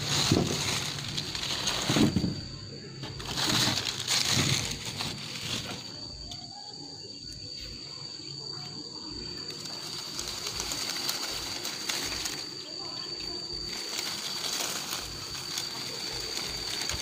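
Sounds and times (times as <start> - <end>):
fruit dropped into woven sack: 0.0 - 6.4
branches and leaves rustling: 0.0 - 17.0
steady high-pitched whine: 0.0 - 17.0.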